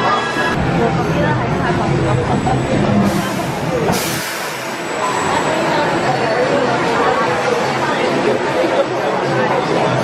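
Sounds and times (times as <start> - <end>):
hiss of released air: 3.1 - 4.8.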